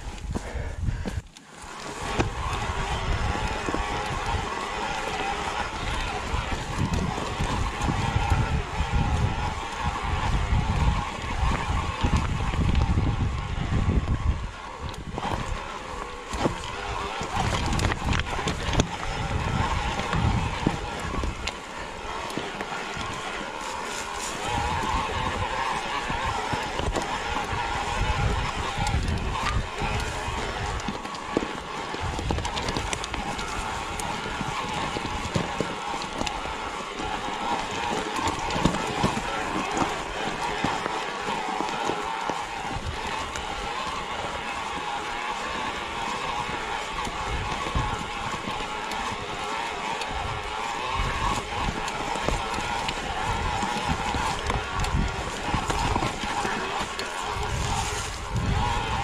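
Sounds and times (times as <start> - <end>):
bike tyres crunching over stones: 0.0 - 59.0.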